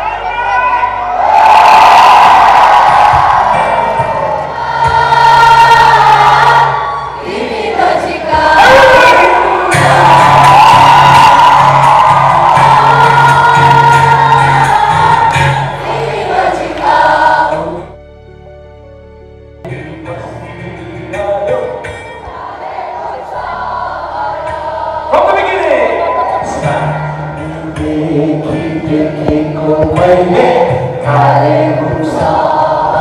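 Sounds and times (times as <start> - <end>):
audience singing along: 1.2 - 17.9, 21.6 - 33.0.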